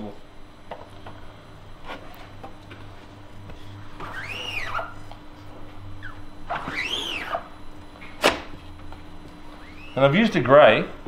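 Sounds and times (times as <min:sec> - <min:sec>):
squeegee blade squeaking: 0:04.0 - 0:05.0, 0:06.0 - 0:07.5, 0:09.6 - 0:10.2.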